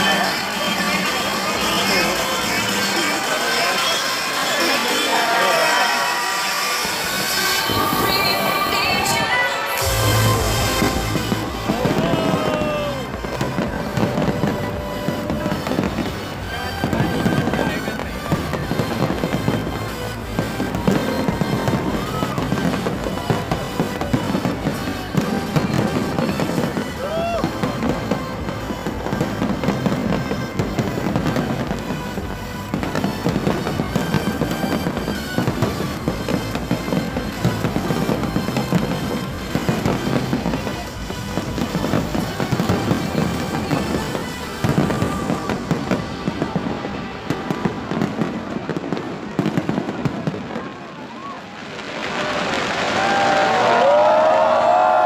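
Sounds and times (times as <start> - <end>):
crowd cheering and whooping: 0.0 - 55.0
fireworks bursting and crackling: 0.0 - 55.0.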